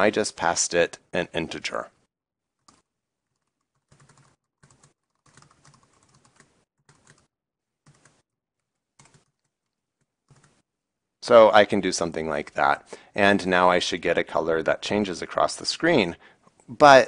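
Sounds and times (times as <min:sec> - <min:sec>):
typing on computer keyboard: 0:02.6 - 0:10.6.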